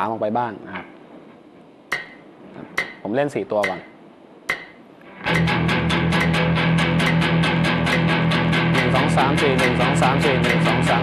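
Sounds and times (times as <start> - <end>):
metronome ticking: 1.9 - 2.2, 2.8 - 3.9, 4.5 - 11.0.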